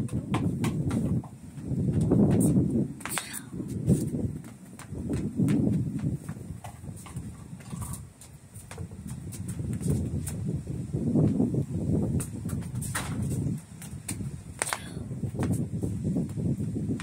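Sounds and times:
ball bouncing on concrete: 0:00.0 - 0:10.4, 0:11.2 - 0:17.0
sneakers scuffing: 0:00.1 - 0:10.6, 0:12.1 - 0:17.0.

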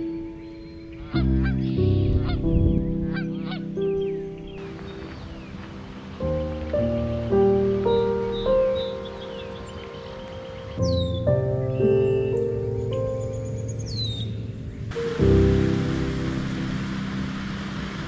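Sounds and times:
instrumental background music: 0:00.0 - 0:18.0
geese honking: 0:01.0 - 0:02.4, 0:03.0 - 0:03.8
small bird chirps: 0:07.9 - 0:14.6.

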